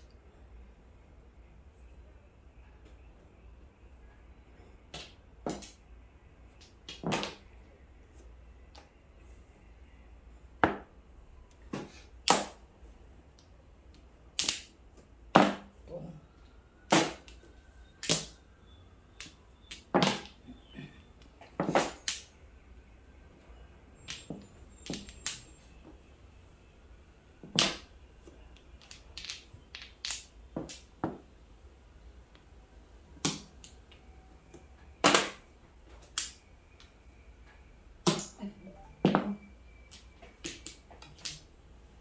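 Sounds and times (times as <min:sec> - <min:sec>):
mahjong tiles clacking: 0:24.0 - 0:25.6, 0:28.5 - 0:31.0.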